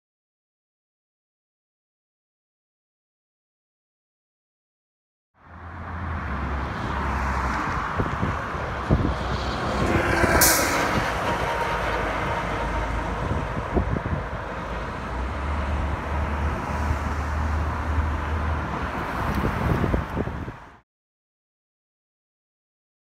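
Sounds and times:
bus passing: 5.4 - 20.8
cars passing: 5.4 - 20.8.

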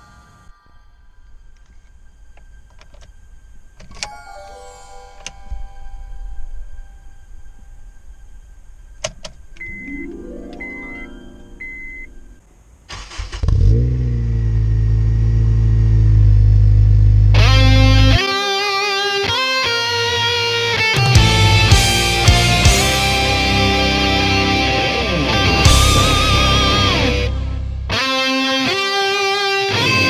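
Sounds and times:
short beeps: 9.6 - 12.4
car engine idling: 21.0 - 28.0.

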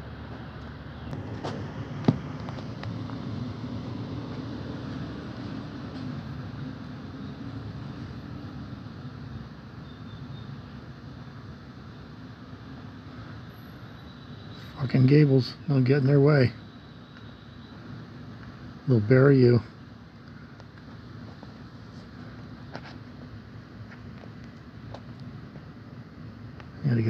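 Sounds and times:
heavy vehicle engine rumbling: 0.0 - 27.0.

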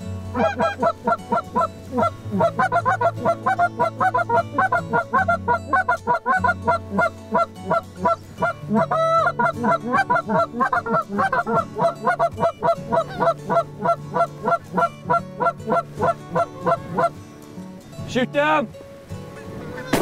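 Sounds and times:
geese honking: 0.3 - 17.2, 19.4 - 20.0.

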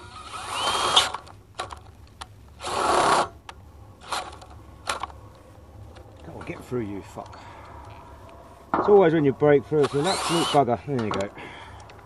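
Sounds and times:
power drill drilling metal: 0.0 - 1.2, 9.8 - 10.6.

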